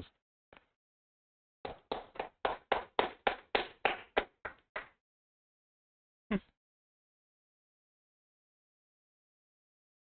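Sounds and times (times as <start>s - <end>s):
hands clapping: 1.6s - 5.0s.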